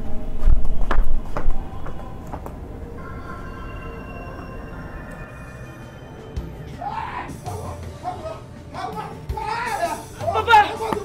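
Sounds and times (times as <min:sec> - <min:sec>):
person crying out and shouting: 0:06.7 - 0:11.0.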